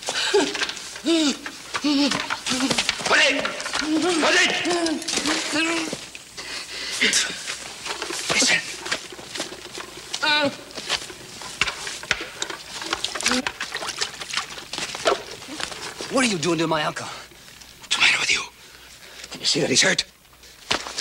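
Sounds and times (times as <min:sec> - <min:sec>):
man crying and groaning in pain: 0:00.2 - 0:02.8
sharp crackles and knocks: 0:00.4 - 0:06.3, 0:07.0 - 0:16.7.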